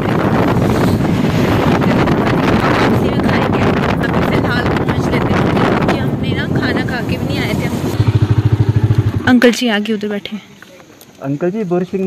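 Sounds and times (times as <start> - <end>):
riding and wind noise: 0.0 - 10.2
small motorbike engine idling: 8.0 - 10.1.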